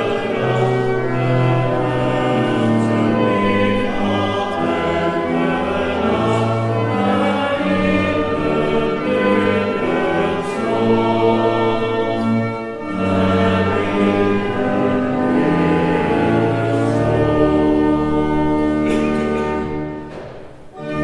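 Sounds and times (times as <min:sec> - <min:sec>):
congregation singing a hymn: 0:00.0 - 0:21.0
pipe organ: 0:00.0 - 0:21.0.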